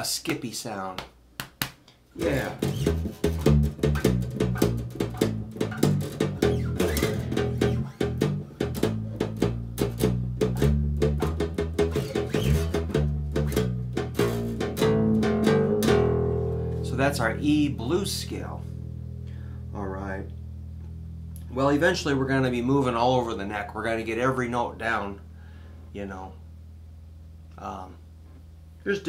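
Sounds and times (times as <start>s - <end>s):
electric bass guitar plucking: 2.2s - 28.8s.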